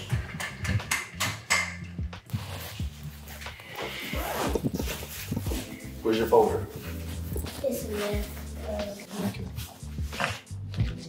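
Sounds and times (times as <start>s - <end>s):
footsteps on hard floor: 2.3s - 11.0s.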